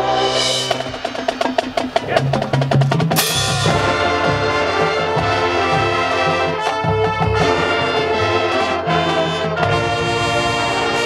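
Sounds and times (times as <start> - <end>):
marching band percussion strikes: 0.0 - 11.0.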